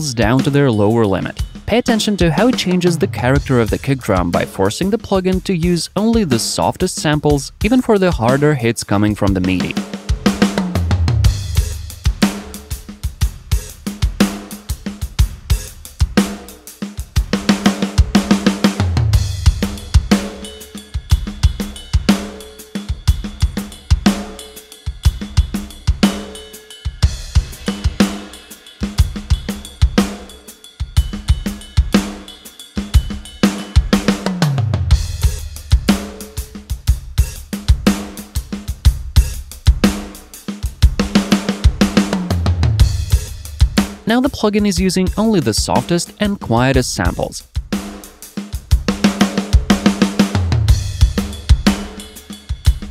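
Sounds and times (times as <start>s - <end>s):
tom fills: 0.0s - 9.8s, 44.0s - 47.4s
rock drum kit groove: 0.0s - 52.9s.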